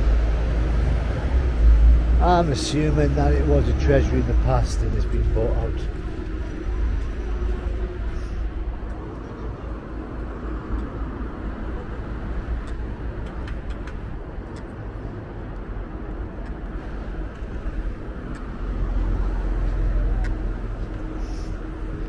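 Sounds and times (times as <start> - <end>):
cars passing on road: 0.0 - 22.0.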